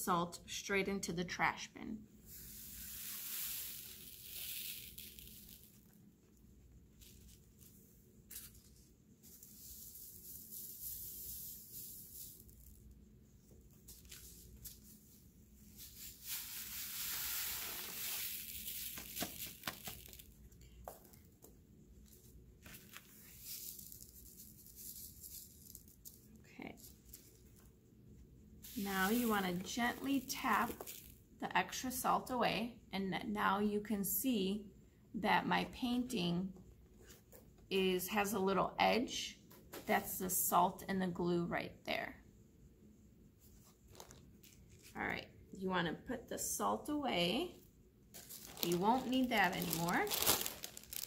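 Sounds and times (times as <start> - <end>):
salt sliding onto paper: 2.3 - 5.8, 15.8 - 20.2, 28.6 - 29.4
paper rustling: 22.6 - 25.9, 43.6 - 44.9, 48.2 - 51.0.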